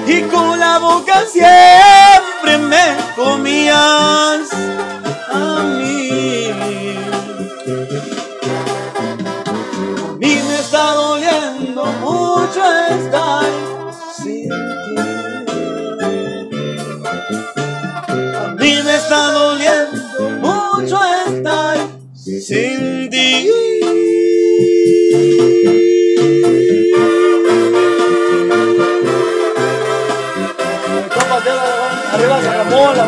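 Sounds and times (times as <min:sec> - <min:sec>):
held brass chord: 0:00.0 - 0:22.0, 0:23.8 - 0:33.0
brass band music: 0:00.0 - 0:33.0.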